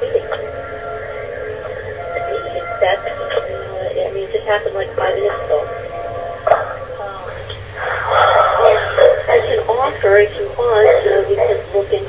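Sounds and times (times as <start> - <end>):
voice over phone line: 0.0 - 0.6, 2.0 - 5.7, 6.6 - 12.0
tinny phone line noise: 0.0 - 12.0.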